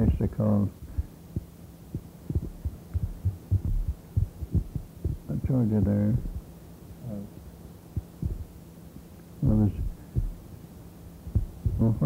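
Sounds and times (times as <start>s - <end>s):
soft low thumps: 0.0s - 6.5s, 7.9s - 8.6s, 9.4s - 10.5s, 11.2s - 12.0s
electrical hum: 0.0s - 12.0s.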